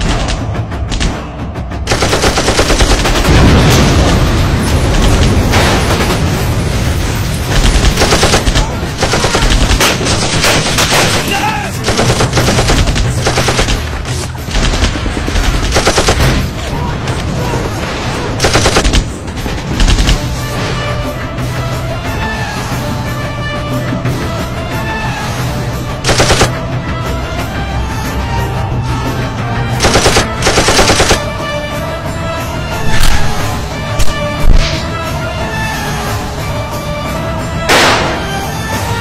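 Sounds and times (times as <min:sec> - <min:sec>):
background music: 0:00.0 - 0:39.0
automatic gunfire: 0:01.9 - 0:03.4, 0:07.6 - 0:13.9, 0:14.5 - 0:16.4, 0:18.4 - 0:19.0, 0:26.1 - 0:26.5, 0:29.8 - 0:31.2.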